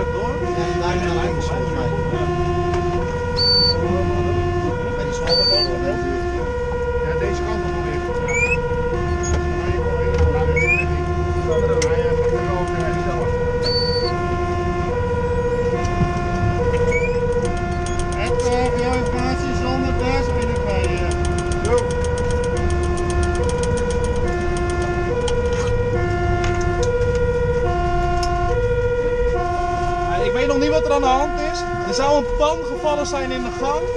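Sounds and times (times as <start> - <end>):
truck engine and road rumble: 0.0 - 33.9
two-tone fire engine siren: 0.0 - 33.9.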